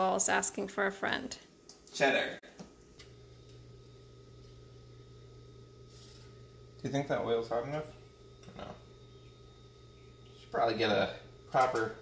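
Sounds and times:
low hum: 0:02.8 - 0:12.0.

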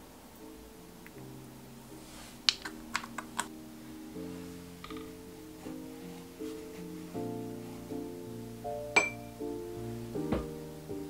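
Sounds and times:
background music: 0:00.0 - 0:11.0.

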